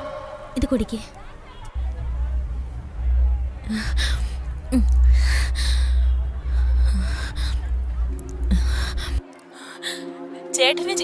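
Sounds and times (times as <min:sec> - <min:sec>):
steady low rumble: 0:00.0 - 0:09.2.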